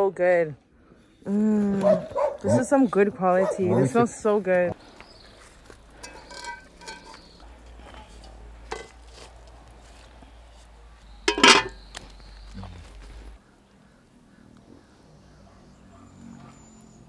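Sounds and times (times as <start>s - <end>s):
utensil clinking on metal pot: 6.0s - 7.3s, 8.7s - 9.0s, 11.3s - 11.8s.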